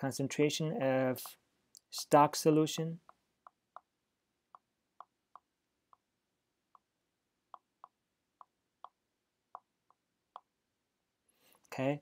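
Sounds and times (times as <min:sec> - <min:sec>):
stylus tapping tablet screen: 0:03.0 - 0:10.7.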